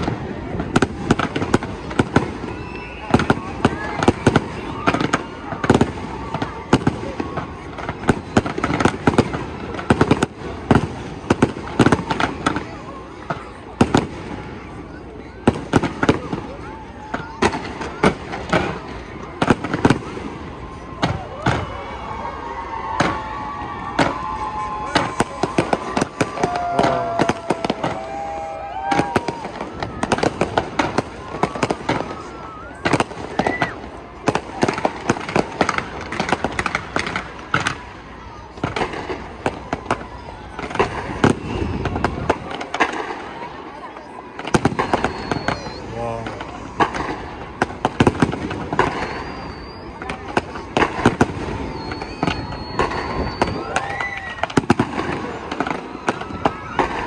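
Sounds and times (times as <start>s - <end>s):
fireworks bangs and crackles: 0.0s - 57.0s.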